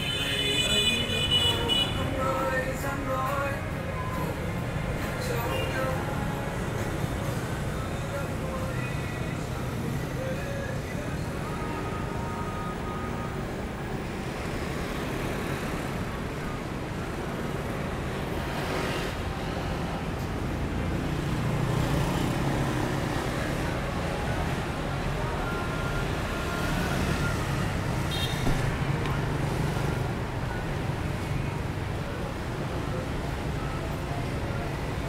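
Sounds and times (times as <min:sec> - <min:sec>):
cars passing: 0:00.0 - 0:35.0.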